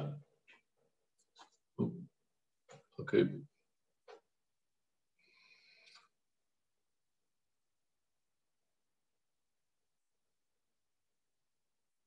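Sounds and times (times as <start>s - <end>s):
man speaking: 1.8s - 2.1s, 3.0s - 3.5s.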